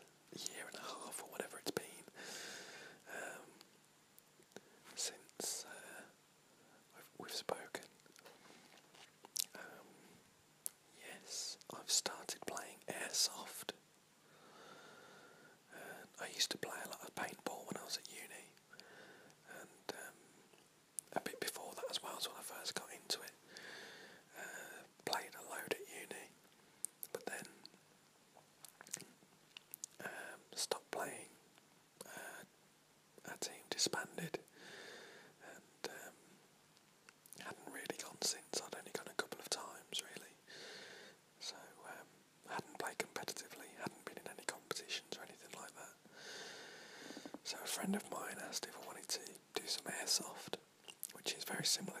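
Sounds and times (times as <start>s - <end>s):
man whispering: 0.0s - 2.2s, 2.9s - 3.7s, 4.5s - 10.0s, 10.6s - 13.8s, 15.6s - 18.6s, 19.4s - 20.2s, 21.0s - 23.4s, 24.3s - 27.7s, 29.8s - 31.4s, 32.0s - 32.5s, 33.2s - 34.5s, 35.3s - 36.3s, 37.3s - 40.5s, 41.4s - 46.0s, 47.1s - 52.0s.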